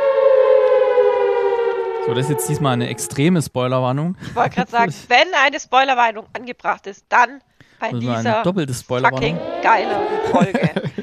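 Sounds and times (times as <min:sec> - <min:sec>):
siren wailing tone: 0:00.0 - 0:03.7, 0:09.1 - 0:10.8.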